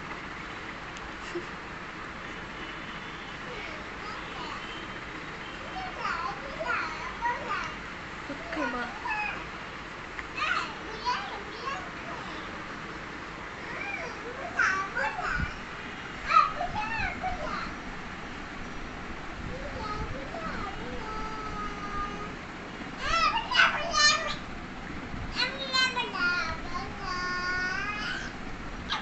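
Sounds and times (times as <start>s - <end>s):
young child babbling: 19.4s - 22.4s, 25.4s - 29.0s.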